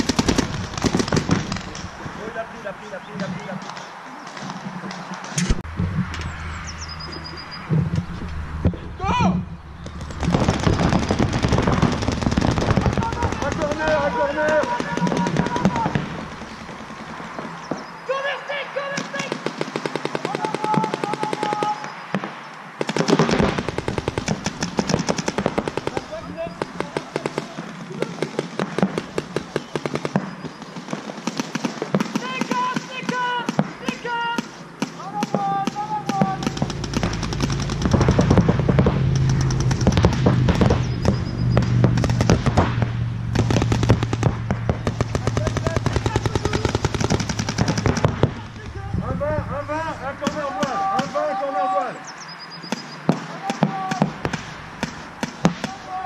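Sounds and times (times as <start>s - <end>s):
paintball markers firing: 0.0s - 1.9s, 9.8s - 17.9s, 18.9s - 48.8s, 50.2s - 51.3s, 52.7s - 56.0s
players shouting: 12.6s - 16.4s, 17.9s - 22.0s, 32.2s - 37.9s, 44.8s - 52.1s, 53.1s - 56.0s.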